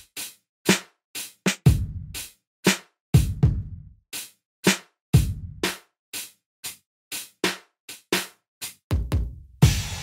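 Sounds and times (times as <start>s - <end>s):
drum machine beat: 0.0s - 10.0s.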